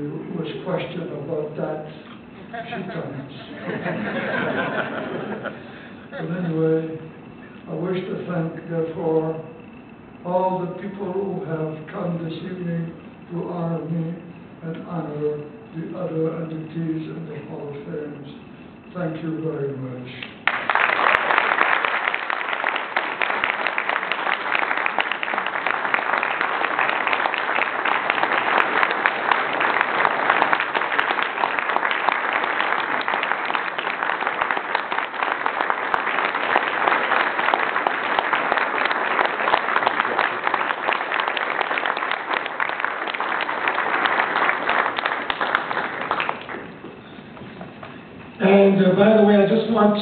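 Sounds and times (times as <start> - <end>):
large audience applauding: 20.4 - 46.9.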